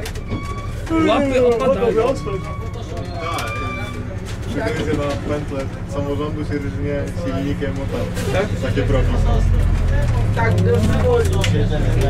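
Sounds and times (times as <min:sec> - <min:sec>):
diesel engine rumble: 0:00.0 - 0:12.0.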